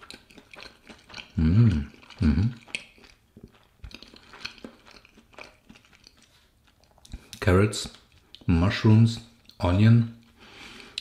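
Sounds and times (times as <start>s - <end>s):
person chewing: 0.0s - 8.5s, 9.2s - 11.0s
hummed mm sounds: 1.4s - 2.6s.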